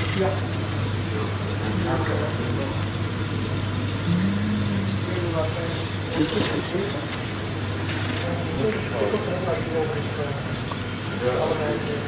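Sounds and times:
aquarium equipment humming: 0.0 - 12.0.

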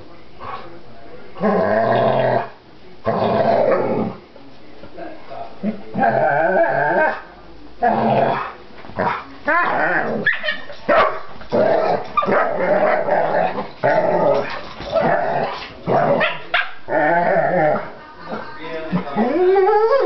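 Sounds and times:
dogs growling and barking: 1.4 - 4.2, 5.6 - 20.0.

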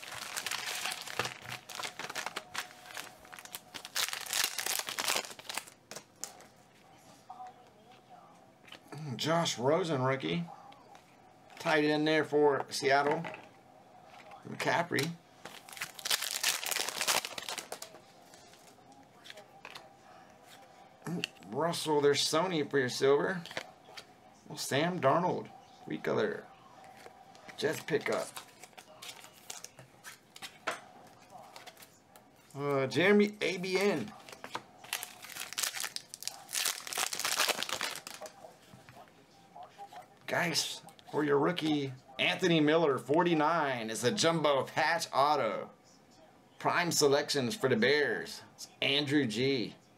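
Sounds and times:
foil wrapper tearing and crinkling: 0.0 - 6.4, 15.5 - 17.9, 34.9 - 38.3.

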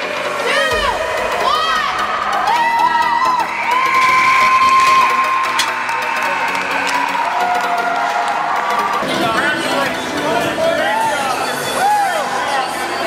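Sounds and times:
background music: 0.0 - 13.0
young players cheering and yelling: 0.1 - 13.0.

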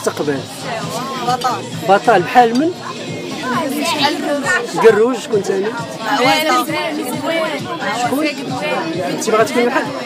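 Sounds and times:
chatter of voices: 0.0 - 10.0
boy speaking: 3.4 - 4.9.

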